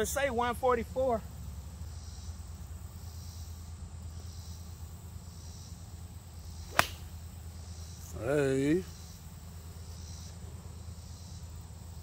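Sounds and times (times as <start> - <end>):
golf club striking ball: 6.7 - 7.2.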